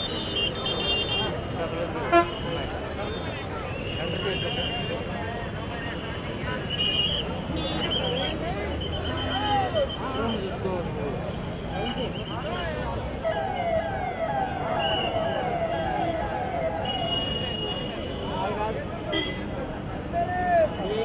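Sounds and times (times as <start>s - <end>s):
crowd voices and shouts: 1.1s - 21.0s
siren yelping: 13.1s - 17.1s.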